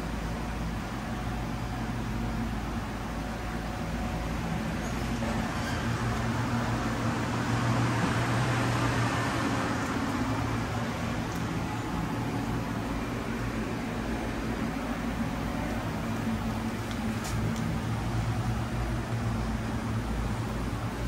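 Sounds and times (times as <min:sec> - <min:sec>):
fan noise: 0:00.0 - 0:21.0
low electrical drone: 0:00.0 - 0:21.0.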